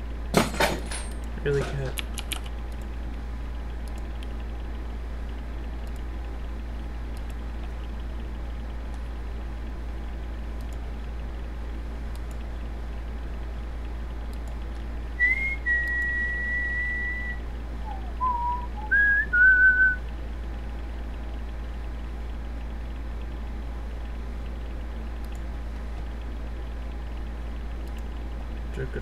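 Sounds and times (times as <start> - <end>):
steady low hum: 0.0 - 29.0
person whistling: 15.2 - 20.0.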